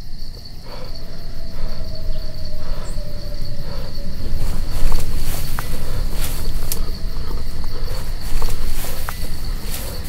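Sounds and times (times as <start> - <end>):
crickets chirping: 0.0 - 10.0
low rumble: 0.0 - 10.0.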